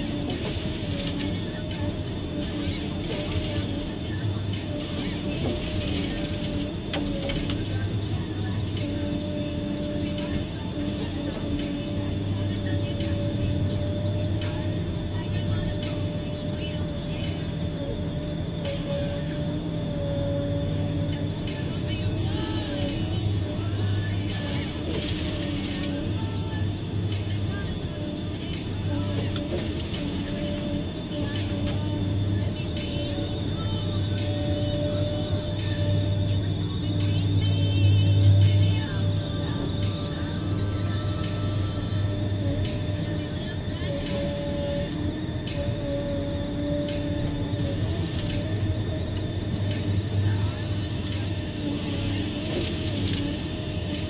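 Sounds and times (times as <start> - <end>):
harvester engine and hydraulics: 0.0 - 54.0.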